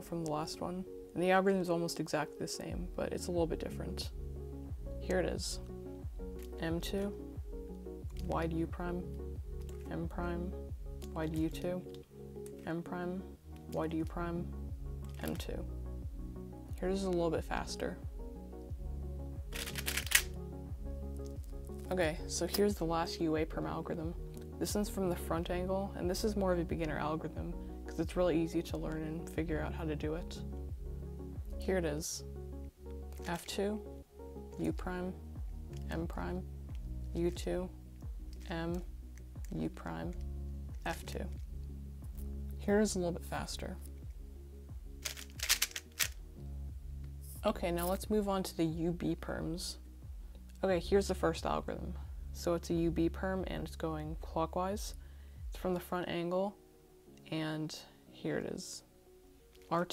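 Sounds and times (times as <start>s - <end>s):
background music: 0.0s - 59.9s
puzzle cube plastic clicks: 19.6s - 20.4s, 45.0s - 46.2s.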